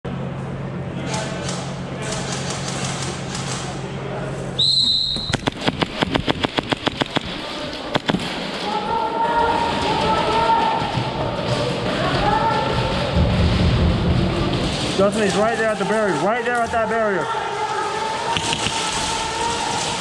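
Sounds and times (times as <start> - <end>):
steady low hum: 3.8 - 8.6
sharp clicks: 5.2 - 8.3, 18.4 - 19.0.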